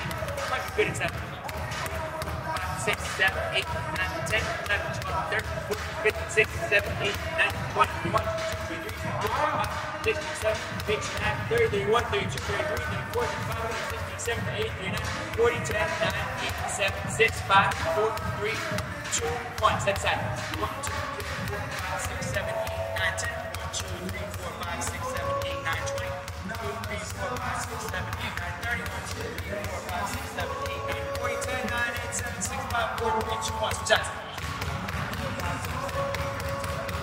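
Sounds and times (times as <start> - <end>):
basketball bouncing on hardwood: 0.0 - 37.0
music playing: 0.0 - 37.0.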